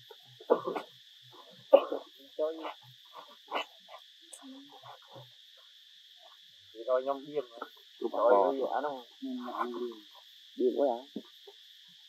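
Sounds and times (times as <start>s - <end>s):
forest insects buzzing: 0.0s - 12.0s.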